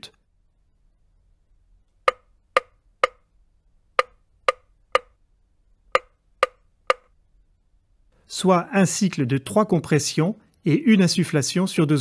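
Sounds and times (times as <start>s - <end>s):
metronome-like clicks: 2.0s - 3.3s, 4.0s - 5.2s, 5.9s - 7.2s.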